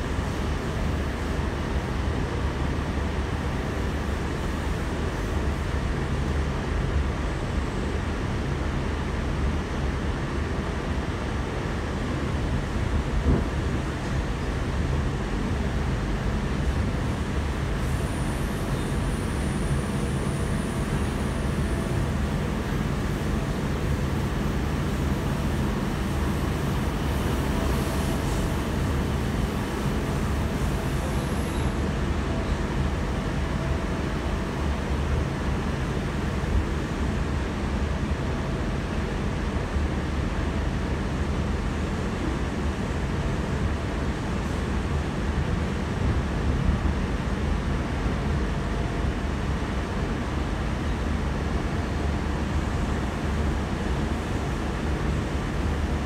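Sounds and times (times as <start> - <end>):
train wheels on rails rumbling: 0.0 - 56.0.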